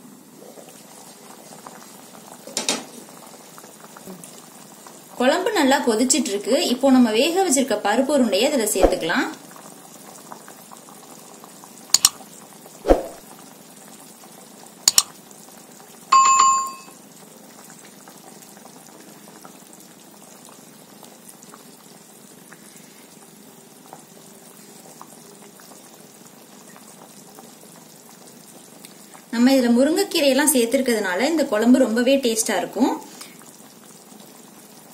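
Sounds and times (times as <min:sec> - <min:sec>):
gravy boiling and bubbling: 0:00.0 - 0:16.1, 0:17.0 - 0:34.9
bell-like ring: 0:16.1 - 0:16.9.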